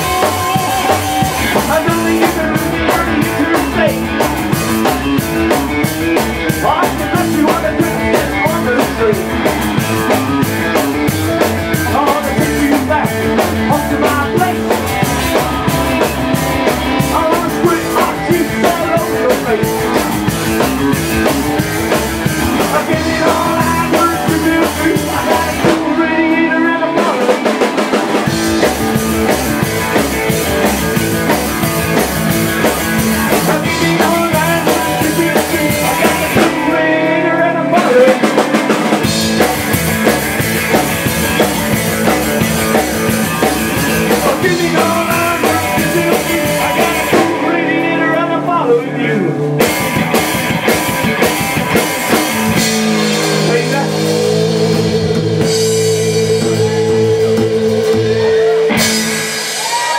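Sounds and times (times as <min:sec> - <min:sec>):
upright double bass: 0:00.0 - 0:26.7, 0:28.2 - 0:58.9
drum kit: 0:00.0 - 0:59.9
electric guitar: 0:00.0 - 0:59.9.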